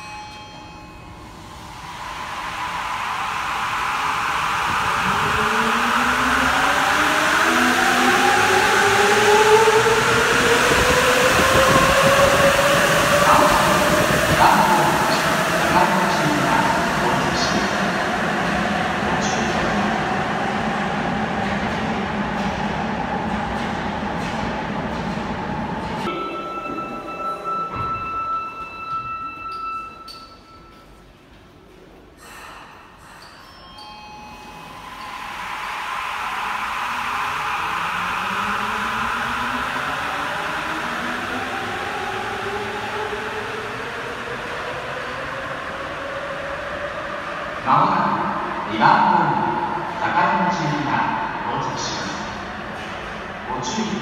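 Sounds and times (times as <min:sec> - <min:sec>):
subway train running rumble: 0:00.0 - 0:54.0.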